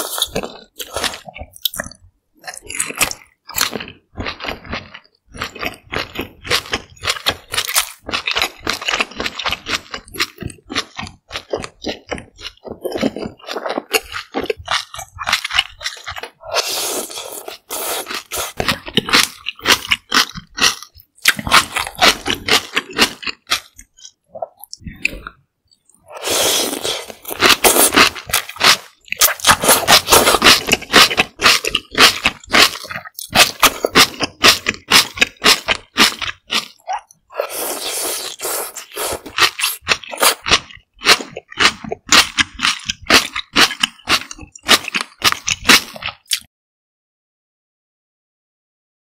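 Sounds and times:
wet chewing of noodles: 0.0s - 46.5s.

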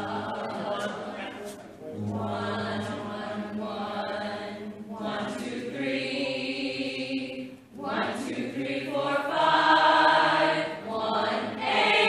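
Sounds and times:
singers holding a sustained note: 0.0s - 12.0s.

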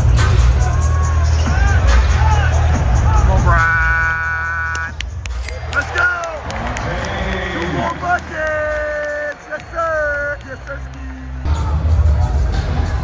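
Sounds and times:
arena music with heavy bass: 0.0s - 6.2s, 10.7s - 13.0s
crowd noise and shouting: 0.0s - 13.0s.

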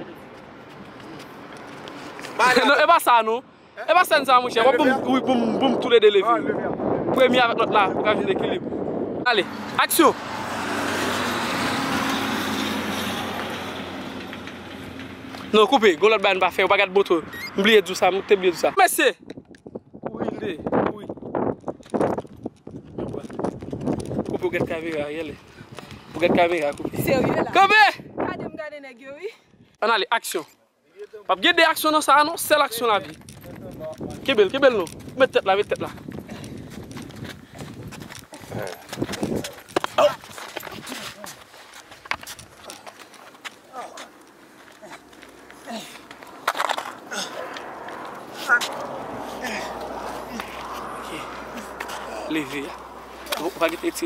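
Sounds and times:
rushing noise of passing vehicle: 8.8s - 19.0s, 42.1s - 54.0s
vehicle engine hum: 9.4s - 18.6s, 41.9s - 54.0s
footsteps on gravelly dirt: 21.4s - 27.1s, 32.8s - 54.0s.

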